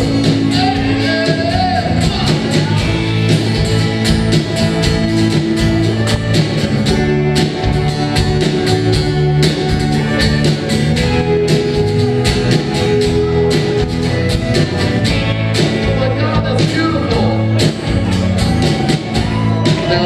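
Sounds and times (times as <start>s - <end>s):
rock band playing instrumental: 0.0s - 20.0s.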